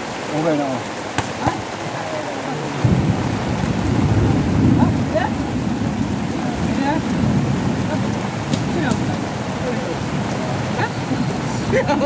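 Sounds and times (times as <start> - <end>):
heavy rain falling: 0.0 - 12.0.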